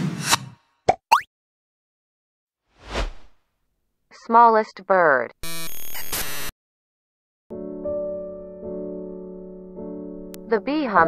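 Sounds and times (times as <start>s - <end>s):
whoosh: 2.8s - 3.4s.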